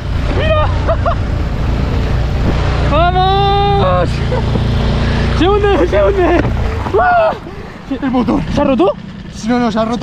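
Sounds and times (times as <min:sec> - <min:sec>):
outboard motor running: 0:00.0 - 0:10.0
water splashing at hull: 0:04.3 - 0:07.9.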